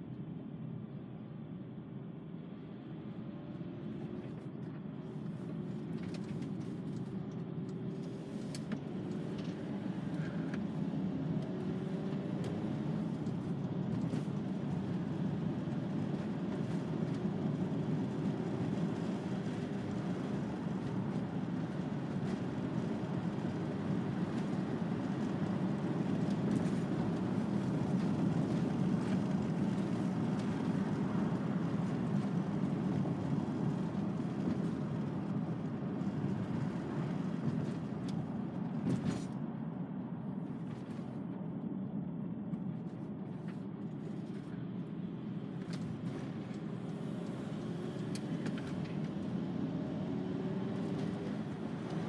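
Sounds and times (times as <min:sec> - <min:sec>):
engine and tyre rumble: 0:00.0 - 0:52.0.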